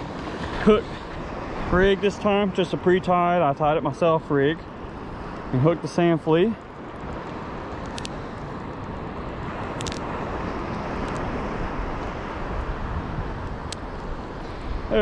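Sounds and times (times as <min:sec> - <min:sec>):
breaking surf: 0:00.0 - 0:15.0
wind on microphone: 0:07.7 - 0:15.0.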